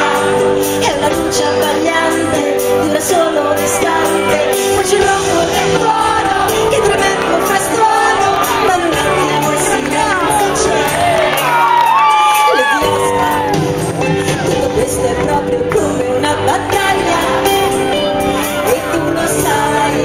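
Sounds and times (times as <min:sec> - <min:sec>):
audience shouting and singing along: 0:00.0 - 0:20.0
live rock band playing: 0:00.0 - 0:20.0
woman singing: 0:00.0 - 0:20.0.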